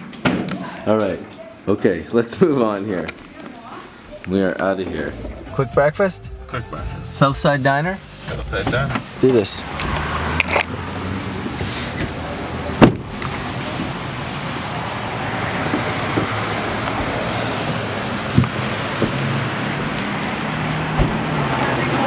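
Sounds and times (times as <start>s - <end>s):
traffic on a wet road: 8.2s - 22.0s
truck door shutting: 12.8s - 13.3s, 20.9s - 21.3s.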